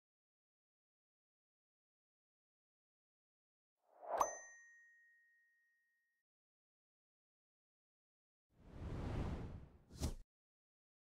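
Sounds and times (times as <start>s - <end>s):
brief swish: 8.7s - 10.2s.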